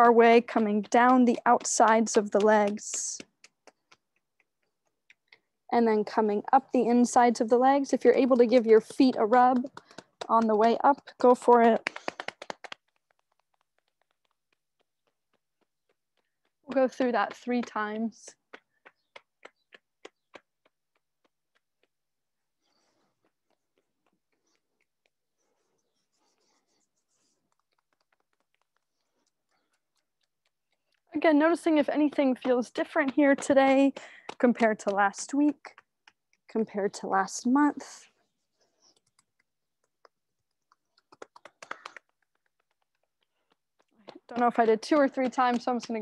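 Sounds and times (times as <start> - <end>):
hands tapping on legs: 0.0 - 37.7, 38.8 - 46.0.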